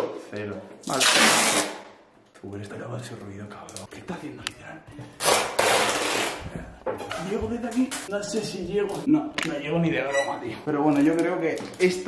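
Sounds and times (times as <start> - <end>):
packing tape ripping off roll: 0.8 - 1.9, 5.2 - 6.4.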